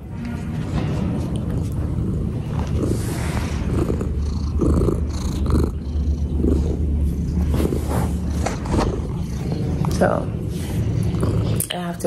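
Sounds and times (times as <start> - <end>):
cat purring: 1.6 - 12.0.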